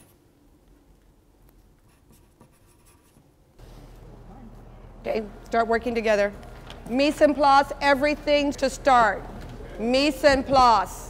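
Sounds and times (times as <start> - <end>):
low outdoor background hum: 0.1 - 11.0
pen scratching on paper: 1.8 - 3.3.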